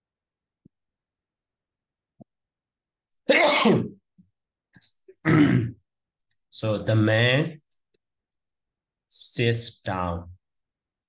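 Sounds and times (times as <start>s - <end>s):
man coughing: 3.3s - 3.9s, 5.2s - 5.8s.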